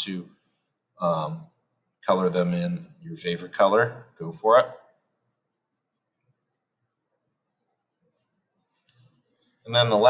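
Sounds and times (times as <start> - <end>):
marker scratching on paper: 0.0 - 3.7, 4.3 - 10.0.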